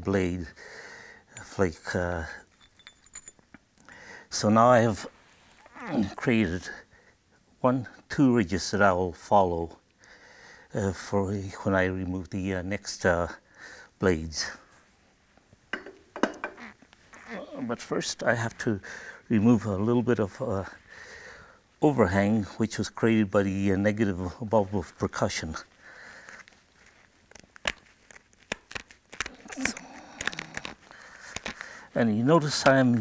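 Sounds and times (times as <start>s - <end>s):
flint and knapping tools clinking: 1.3s - 3.8s, 26.2s - 31.8s.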